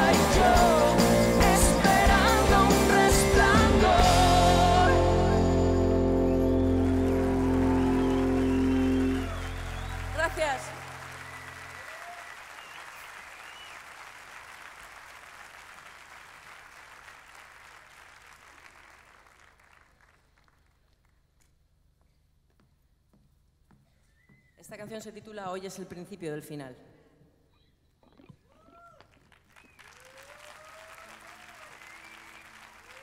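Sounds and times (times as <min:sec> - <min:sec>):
live band final chord: 0:00.0 - 0:11.0
audience applause: 0:06.0 - 0:20.6, 0:28.6 - 0:33.0.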